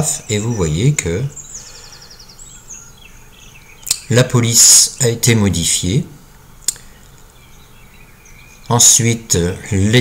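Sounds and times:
sharp click: 0:03.8 - 0:04.1.

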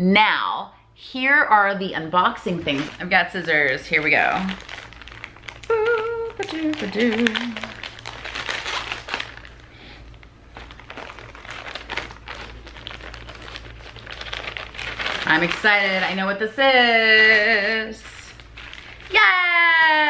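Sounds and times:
plastic bag crinkling: 0:02.5 - 0:16.3, 0:17.0 - 0:20.0
scissors snipping plastic bag: 0:02.7 - 0:09.5
woman humming: 0:05.6 - 0:07.8.

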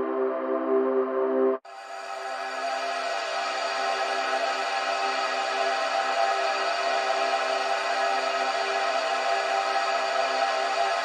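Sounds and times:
sustained synth pad: 0:01.7 - 0:11.0.

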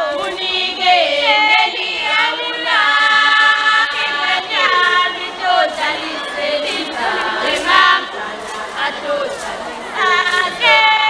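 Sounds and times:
girls chorus singing unaccompanied: 0:00.0 - 0:11.0.

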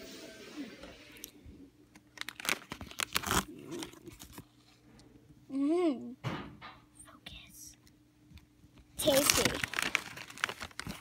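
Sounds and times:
foil bag crinkling: 0:01.9 - 0:04.5, 0:09.0 - 0:11.0.

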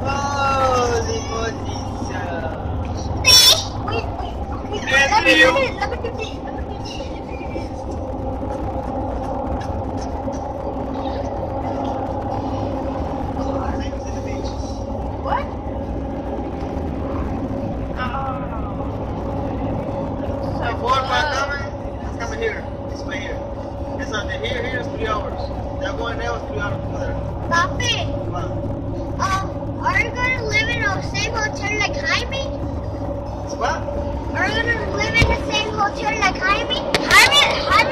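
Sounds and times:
car cabin road and engine rumble: 0:00.0 - 0:37.9
faint voices: 0:00.0 - 0:37.9.

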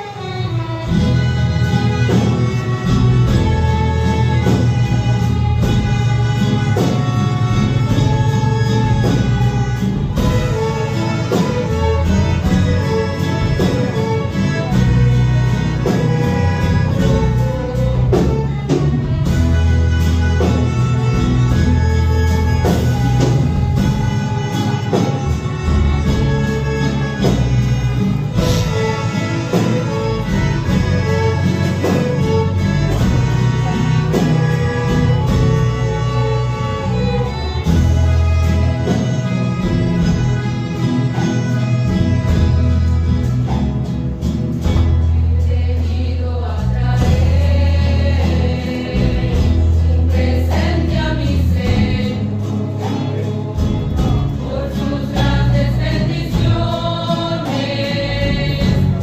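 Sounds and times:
bass line: 0:00.0 - 0:59.0
violins and guitars playing a hymn: 0:00.0 - 0:59.0.

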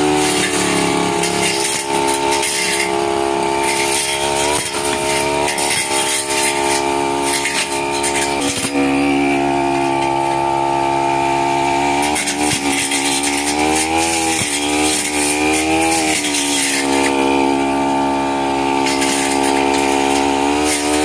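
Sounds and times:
brush cutter engine running: 0:00.0 - 0:21.0.

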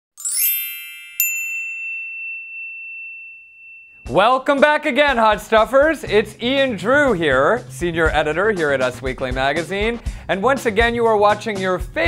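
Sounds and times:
sharp ringing ding: 0:00.2 - 0:04.5
shimmering high tones: 0:00.2 - 0:04.6.

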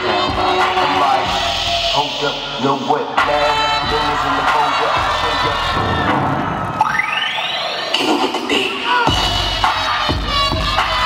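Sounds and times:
audience cheering and shouting: 0:00.0 - 0:11.0.

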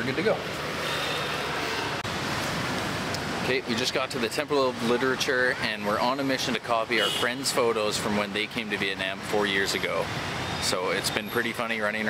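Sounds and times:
outdoor street ambience: 0:00.0 - 0:12.0.

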